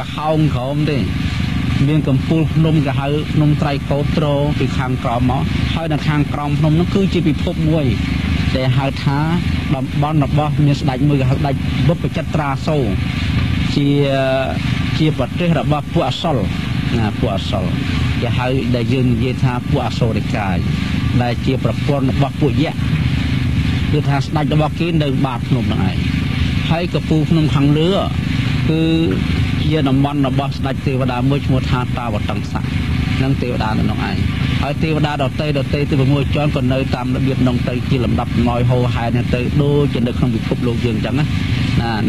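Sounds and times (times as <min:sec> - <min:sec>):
man talking: 0:00.0 - 0:42.0.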